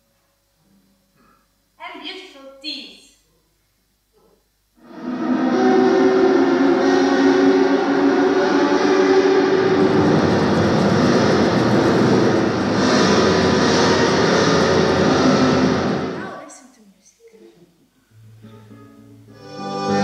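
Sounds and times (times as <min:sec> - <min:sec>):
dense rumbling soundtrack drone: 0:04.8 - 0:16.3.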